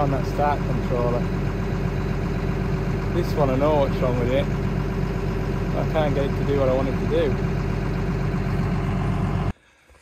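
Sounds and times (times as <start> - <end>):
excavator diesel engine idling: 0.0 - 9.6.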